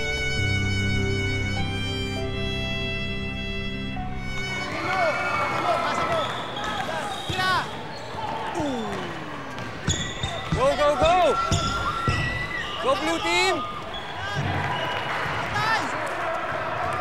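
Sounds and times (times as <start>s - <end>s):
sneakers squeaking: 4.2s - 15.6s
basketball bouncing on concrete: 9.6s - 12.4s.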